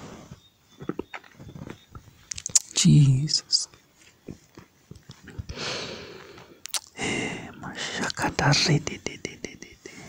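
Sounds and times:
person speaking: 2.3 - 3.8, 6.7 - 10.0.

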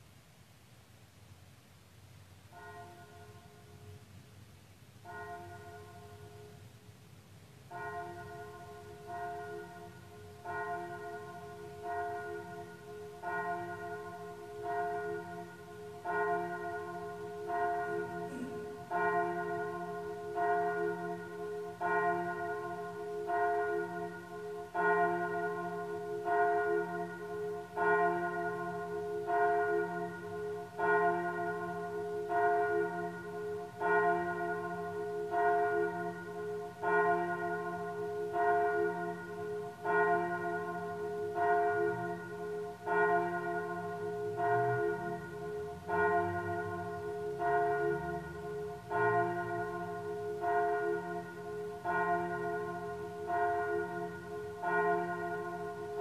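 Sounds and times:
church bell tolling: 2.5 - 4.1, 5.0 - 6.6, 7.7 - 56.0.

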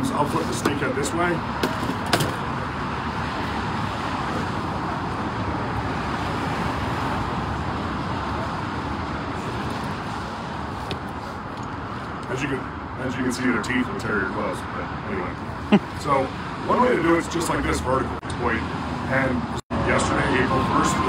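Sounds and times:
rushing background noise: 0.0 - 21.0.

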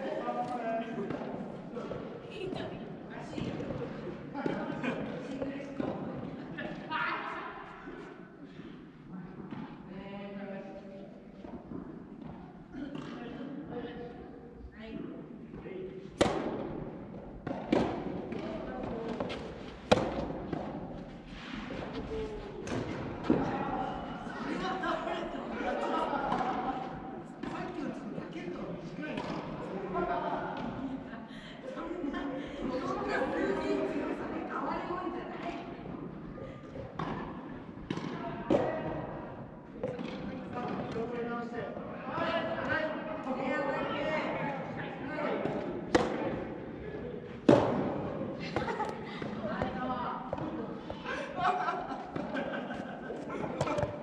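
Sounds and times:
players' voices: 0.0 - 54.0
rackets hitting ball echoing: 16.2 - 24.6, 25.7 - 27.6, 29.1 - 29.6, 37.0 - 41.3, 45.4 - 46.8, 47.4 - 51.3, 52.0 - 54.0.

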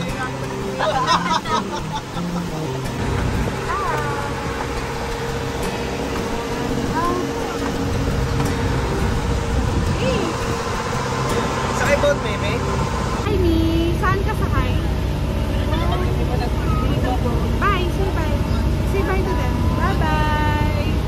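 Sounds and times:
boat engine droning: 0.0 - 21.0.

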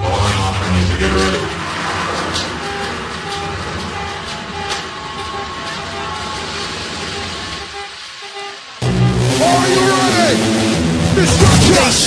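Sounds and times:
rushing noisy texture: 0.0 - 12.0
sharp hits: 0.9 - 12.0
drum and bass music: 8.7 - 12.0
heavy bass: 8.8 - 12.0.

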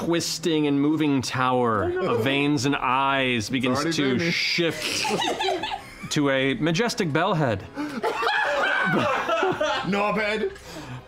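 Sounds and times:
people laughing and snickering: 4.3 - 6.2, 7.7 - 10.5.

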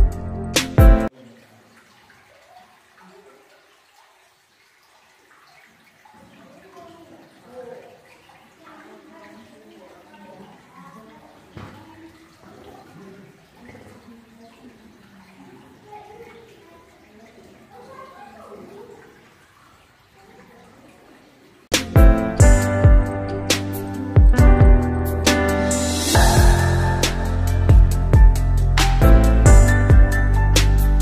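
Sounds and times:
running water: 0.0 - 31.0.

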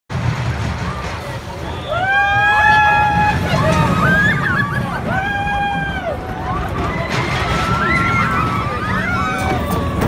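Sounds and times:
roller coaster train rumbling: 0.1 - 10.0
riders screaming and whooping: 1.0 - 10.0.

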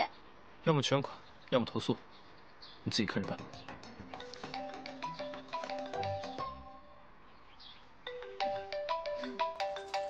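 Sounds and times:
phone ringtone melody: 3.2 - 7.2, 8.0 - 10.0.

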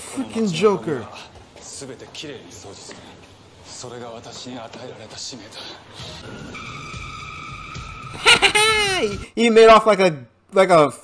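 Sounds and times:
television dialogue: 0.0 - 11.0.

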